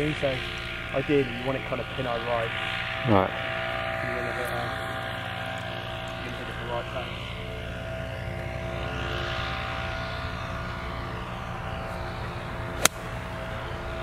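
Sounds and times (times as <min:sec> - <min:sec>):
engine drone: 0:00.0 - 0:14.0
golf ball struck crack: 0:12.8 - 0:13.2.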